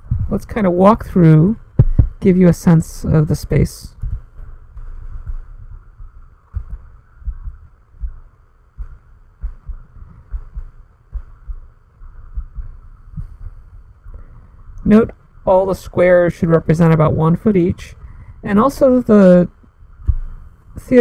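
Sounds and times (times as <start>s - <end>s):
faint steady hum: 0.0s - 21.0s
soft low thumps: 0.0s - 21.0s.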